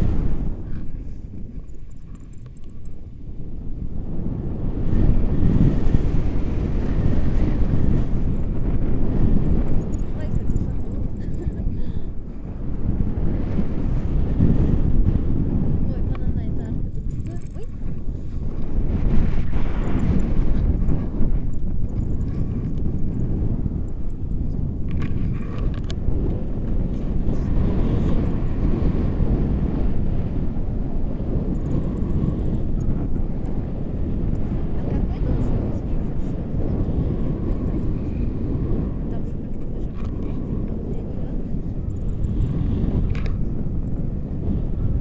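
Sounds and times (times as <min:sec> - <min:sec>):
wind buffeting microphone: 0:00.0 - 0:45.0.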